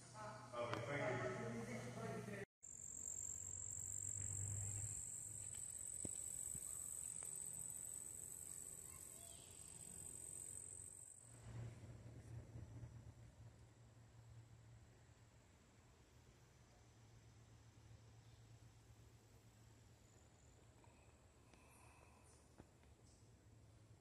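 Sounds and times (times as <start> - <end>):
shrill insect chorus: 2.6 - 11.2.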